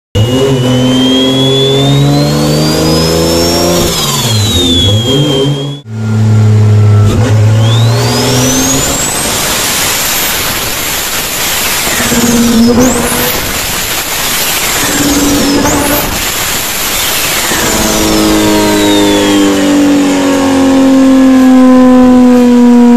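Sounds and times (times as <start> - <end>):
turbo whistle: 0.2 - 22.2
engine revving: 0.2 - 22.9.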